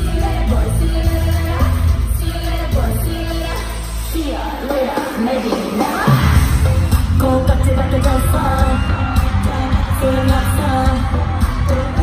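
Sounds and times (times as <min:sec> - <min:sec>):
live pop music: 0:00.0 - 0:12.0
woman singing lead vocal: 0:00.0 - 0:12.0
heavy bass beat: 0:06.1 - 0:12.0.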